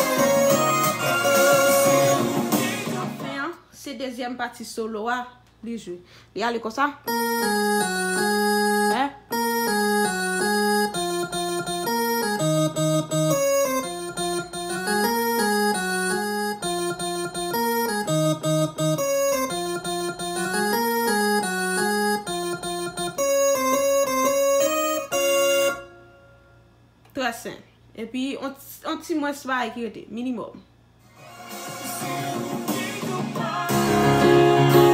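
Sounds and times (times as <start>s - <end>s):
electronic keyboard chords: 0.0s - 3.4s, 7.0s - 26.6s, 31.1s - 34.9s.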